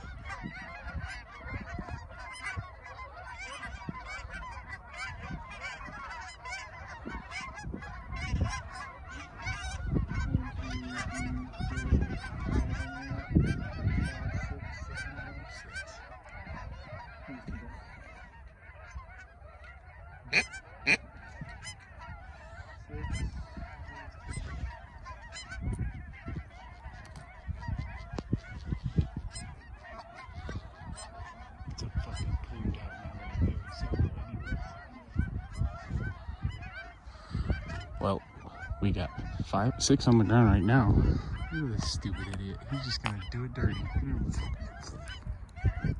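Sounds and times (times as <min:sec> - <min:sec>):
geese honking: 0:00.0 - 0:45.9.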